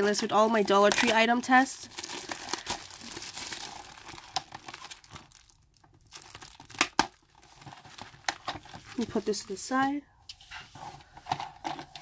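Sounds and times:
plastic wrap crinkling and tearing: 0.0s - 9.8s.

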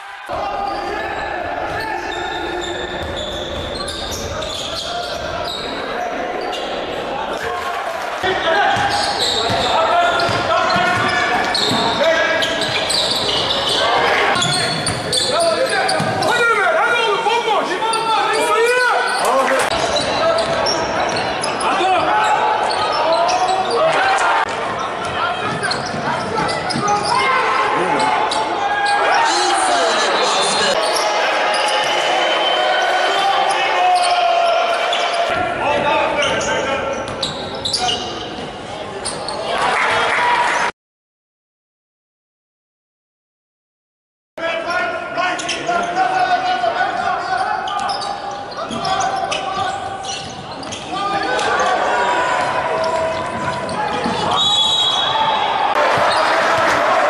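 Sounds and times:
voices of players and spectators: 0.0s - 40.7s, 44.4s - 57.0s.

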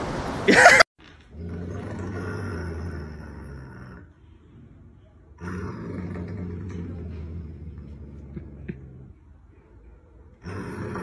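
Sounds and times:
dog growling low: 1.3s - 9.4s, 10.3s - 11.0s.

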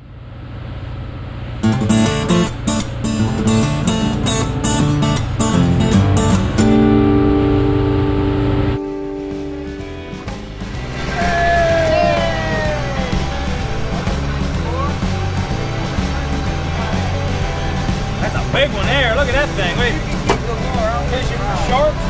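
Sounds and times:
low steady drone: 0.0s - 22.0s
acoustic guitar playing: 1.6s - 22.0s.

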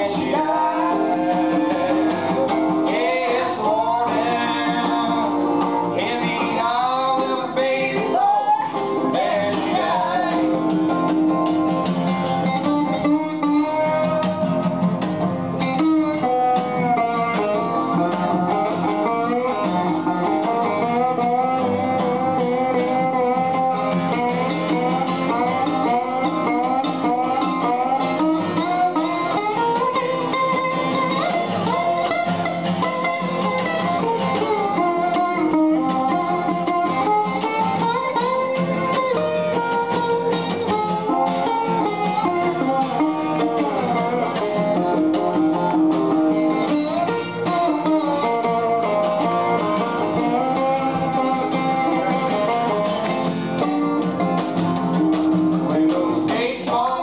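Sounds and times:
acoustic guitar: 0.0s - 57.0s
resonator guitar picking: 0.0s - 57.0s.

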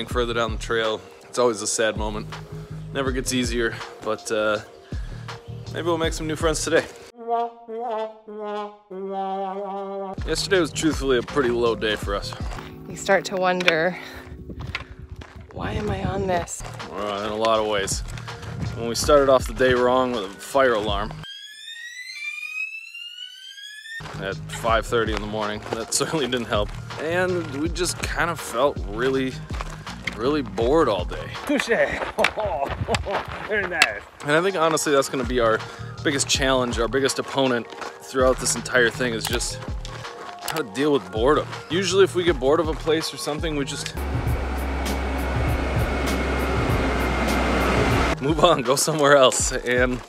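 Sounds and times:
music with ticking beat: 0.0s - 0.8s, 3.1s - 3.9s, 10.2s - 14.0s, 15.8s - 20.1s, 24.1s - 30.0s, 35.2s - 50.0s
fire alarm electronic tone: 21.2s - 24.1s
train low rumble: 44.0s - 48.2s.

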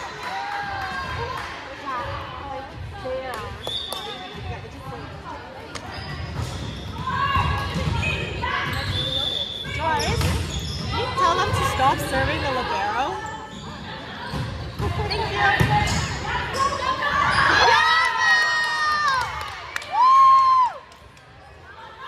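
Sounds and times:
players calling and shouting: 0.0s - 19.3s.

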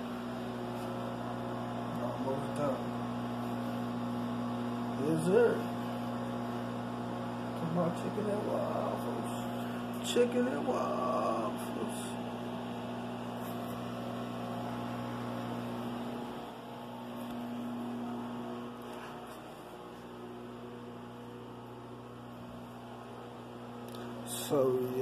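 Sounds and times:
low electrical appliance hum: 0.0s - 25.0s.

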